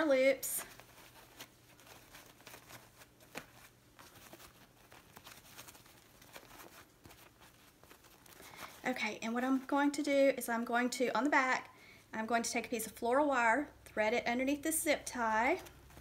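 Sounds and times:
ribbon bow rustling: 0:00.0 - 0:09.9.

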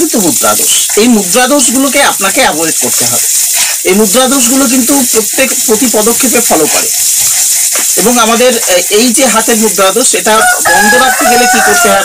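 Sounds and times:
person talking: 0:00.0 - 0:07.0, 0:07.8 - 0:12.0
steady high hiss: 0:00.0 - 0:12.0.

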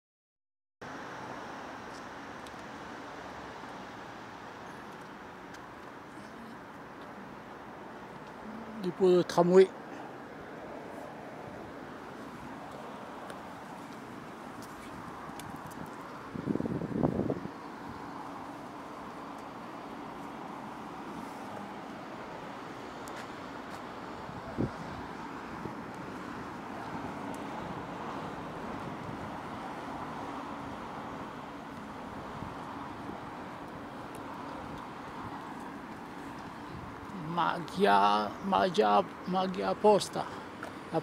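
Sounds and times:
distant street traffic: 0:00.8 - 0:41.0.

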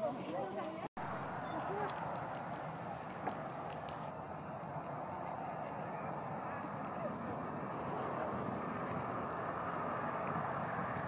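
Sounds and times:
steam venting rushing: 0:01.3 - 0:11.0.

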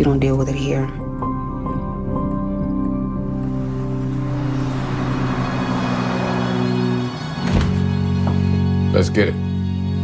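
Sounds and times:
car passing whoosh: 0:03.3 - 0:08.8.

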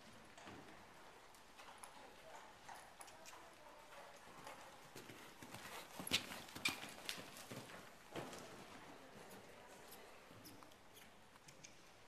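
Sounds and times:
horse hoofbeats on soft ground: 0:00.0 - 0:10.7.

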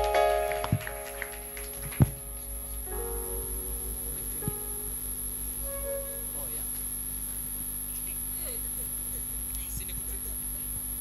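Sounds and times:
electrical mains hum: 0:00.0 - 0:11.0
faint high whine: 0:00.0 - 0:11.0.

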